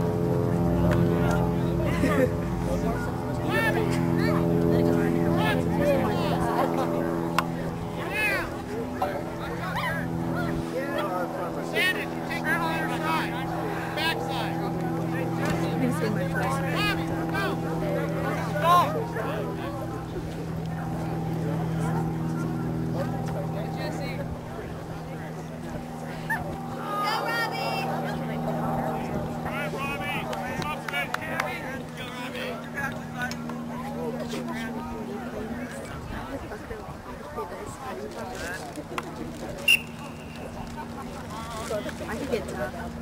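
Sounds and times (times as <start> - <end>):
distant shouting voices: 0.0 - 34.1, 39.6 - 42.0
motor-like hum: 0.0 - 43.0.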